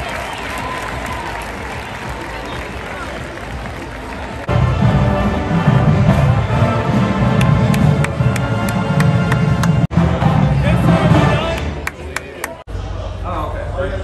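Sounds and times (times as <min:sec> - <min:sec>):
marching band brass: 0:00.0 - 0:12.1.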